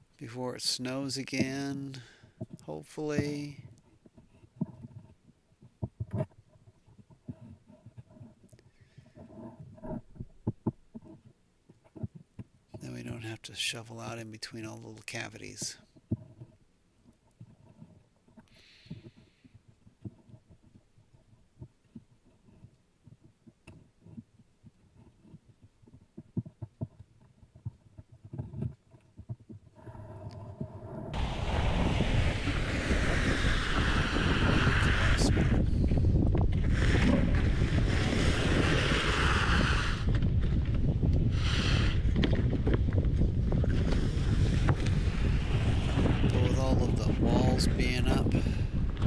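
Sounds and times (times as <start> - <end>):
sled dragged over icy plywood: 2.7 - 11.3, 26.3 - 49.0
wind on microphone: 27.6 - 49.0
snow shovel scraping: 31.2 - 40.1, 43.6 - 47.4.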